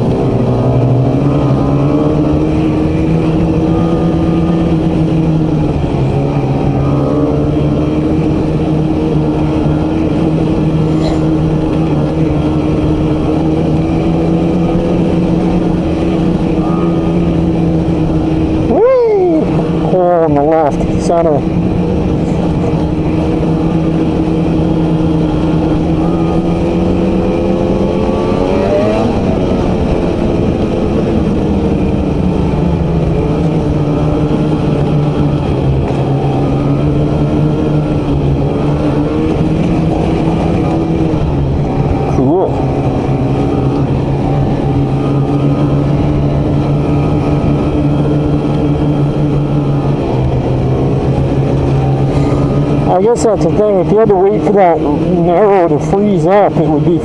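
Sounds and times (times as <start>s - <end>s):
snowmobile engine running: 0.0s - 57.0s.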